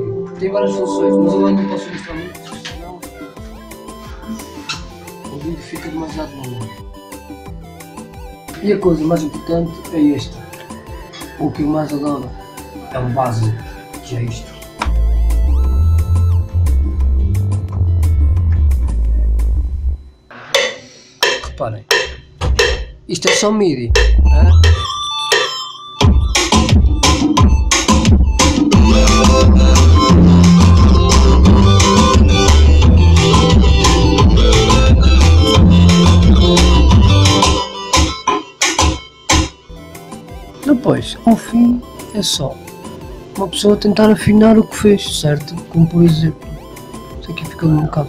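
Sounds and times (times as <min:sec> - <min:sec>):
strummed guitar chords: 0:00.0 - 0:02.8, 0:26.0 - 0:43.4
deep synthesizer bass notes: 0:14.8 - 0:20.1, 0:23.9 - 0:24.9, 0:26.0 - 0:37.6.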